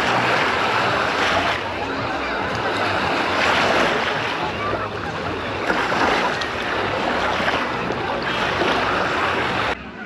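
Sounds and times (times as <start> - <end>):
waves washing on sandy shore: 0.0 - 9.8.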